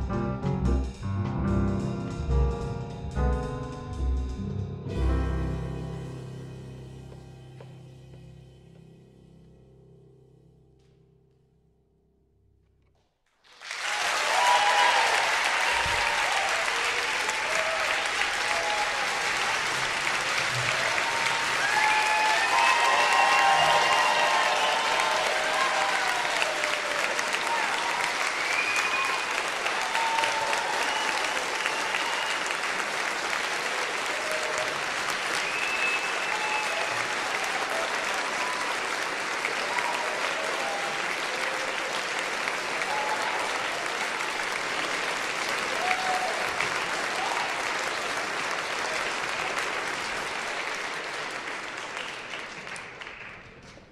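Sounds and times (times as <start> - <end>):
audience applauding: 13.3 - 53.9
crowd cheers and whoops: 13.6 - 32.8, 33.8 - 44.3, 45.4 - 48.2.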